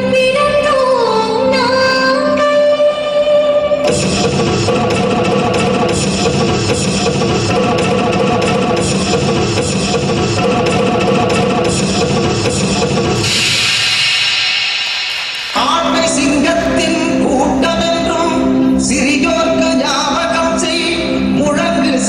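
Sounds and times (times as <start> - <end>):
instrumental music with drums: 3.8 - 18.2
bright hiss: 13.2 - 16.4.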